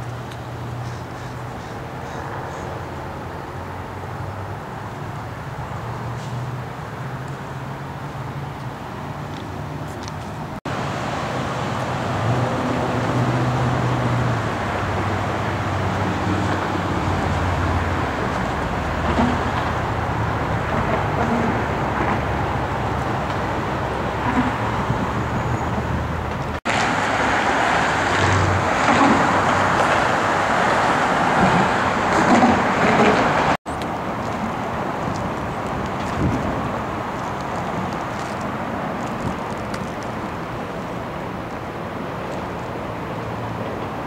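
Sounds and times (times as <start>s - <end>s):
cars passing: 0.0s - 44.0s.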